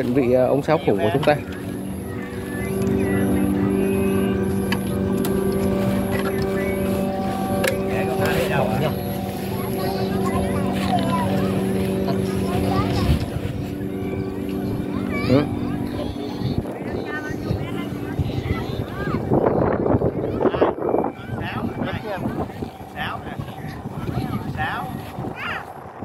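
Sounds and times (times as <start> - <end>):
kite flutes droning: 0.0 - 26.0.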